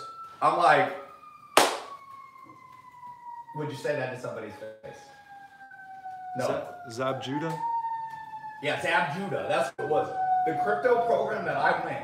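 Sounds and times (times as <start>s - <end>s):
distant siren wail: 0.0s - 12.0s
sharp clap: 1.6s - 2.0s.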